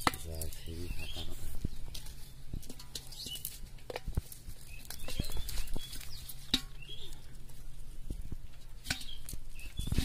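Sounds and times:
leaves and net rustling: 0.0s - 10.0s.

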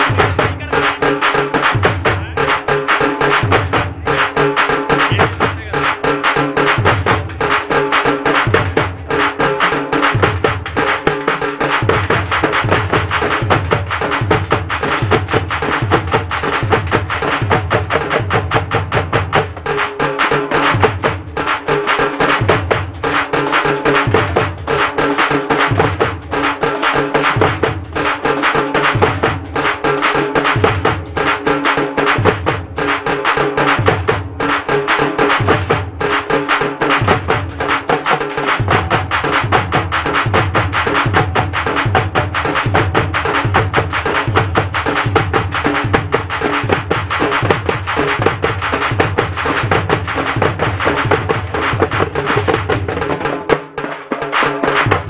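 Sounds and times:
frame drums struck with sticks: 0.0s - 55.0s.

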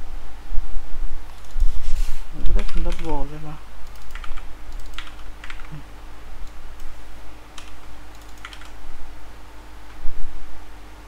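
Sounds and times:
faint steady hum: 0.0s - 11.0s
computer keyboard keystrokes: 2.6s - 3.2s, 3.8s - 5.8s, 7.6s - 8.8s.

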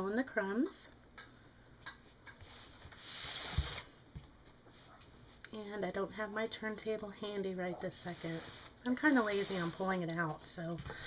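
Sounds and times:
rubbing sliding noise: 2.4s - 3.9s, 8.0s - 10.0s.

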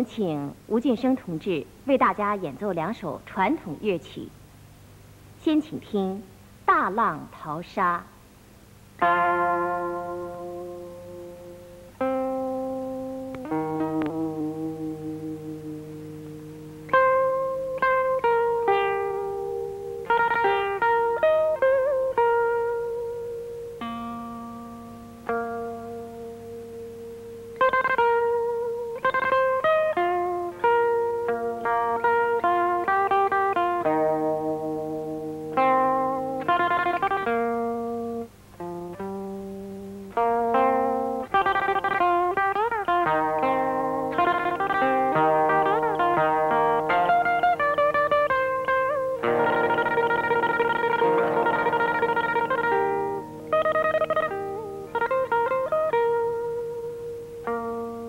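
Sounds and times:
electric pipa melody: 9.0s - 58.0s
fast tremolo picking: 9.0s - 58.0s.

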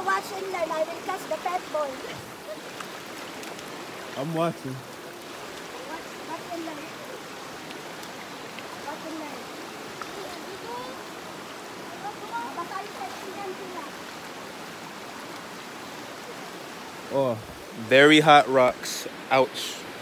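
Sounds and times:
river rushing over rocks: 0.0s - 20.0s.

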